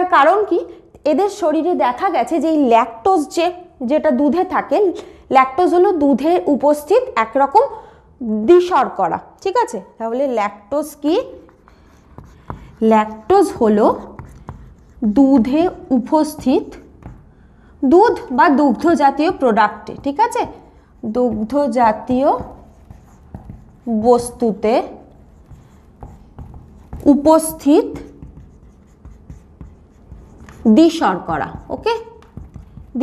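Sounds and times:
woman speaking: 0.0s - 11.6s, 12.8s - 16.9s, 17.8s - 22.7s, 23.8s - 25.1s, 27.0s - 28.3s, 30.5s - 32.3s
marker scratching on whiteboard: 10.6s - 33.0s
marker tapping: 11.0s - 33.0s.

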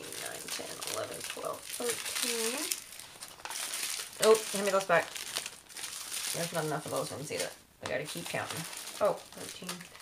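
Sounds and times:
plastic baggies crinkling: 0.0s - 10.0s.

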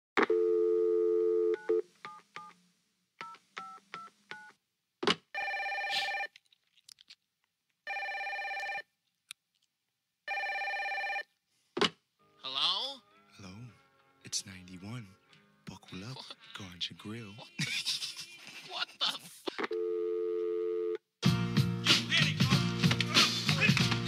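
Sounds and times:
telephone dial tone: 0.2s - 1.8s, 5.4s - 6.3s, 7.9s - 8.8s, 10.3s - 11.3s, 19.7s - 21.0s
telephone line ringing: 5.4s - 6.3s, 7.9s - 8.8s, 10.3s - 11.3s.

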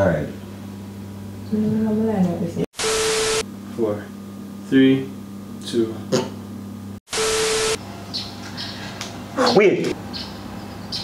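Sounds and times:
static glitch hiss: 2.8s - 3.5s, 7.1s - 7.8s.

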